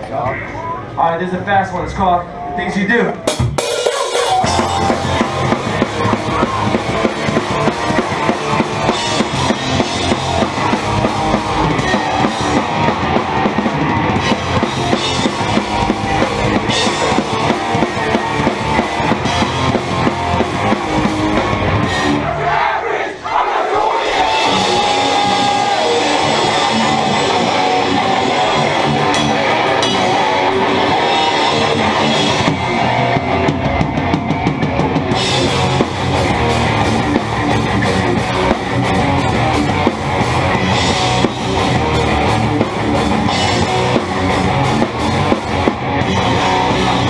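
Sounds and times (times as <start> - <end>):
bass guitar: 1.8 - 22.4, 24.0 - 47.0
distorted electric guitars: 2.3 - 22.4, 24.0 - 47.0
drum kit pounding: 3.1 - 23.2, 23.8 - 47.0.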